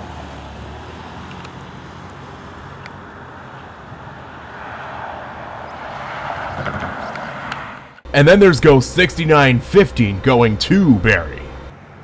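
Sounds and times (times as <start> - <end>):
train diesel drone: 7.9 - 12.0.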